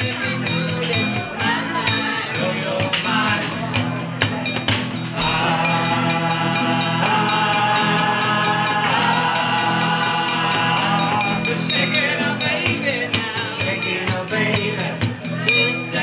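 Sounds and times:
band playing held chords: 0.0 - 16.0
ticking percussion beat: 0.0 - 16.0.

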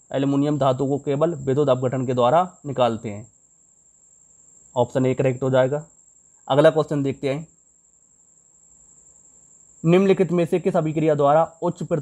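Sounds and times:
low hiss: 0.0 - 12.0
man's voice: 0.1 - 3.2, 9.8 - 12.0.

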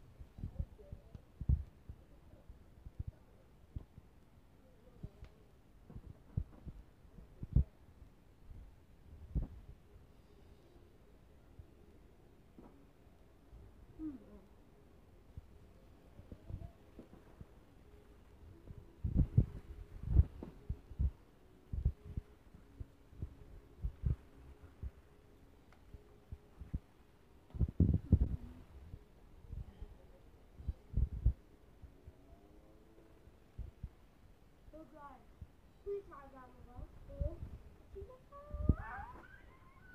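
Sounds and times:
faint steady hum: 0.0 - 39.9.

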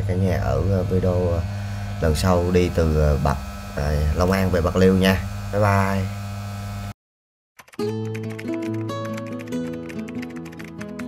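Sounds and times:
music with plucked notes: 7.8 - 11.0.

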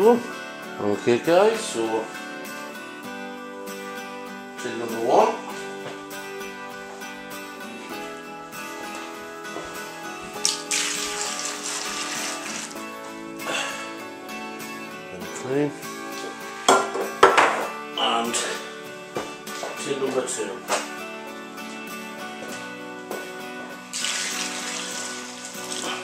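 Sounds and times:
acoustic guitar music: 0.0 - 26.0
liquid pouring into plastic bucket: 10.4 - 12.8, 23.9 - 26.0.

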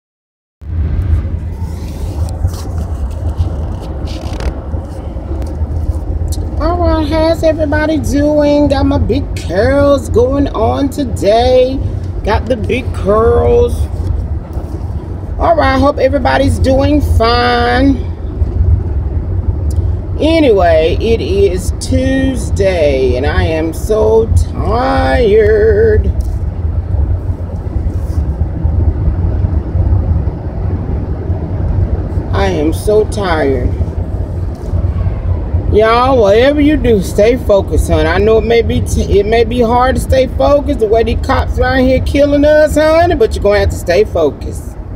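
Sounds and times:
car driving rumble inside cabin: 0.7 - 44.9.

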